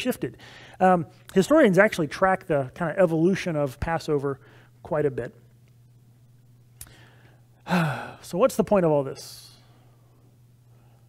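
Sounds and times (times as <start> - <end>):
man speaking: 0.0 - 5.4, 8.2 - 9.7
steady low hum: 0.0 - 11.0
man sighing: 6.8 - 8.2.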